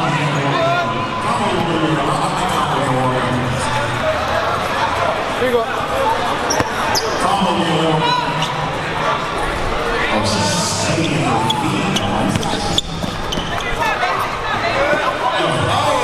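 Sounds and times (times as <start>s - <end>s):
spectators chattering: 0.0s - 16.0s.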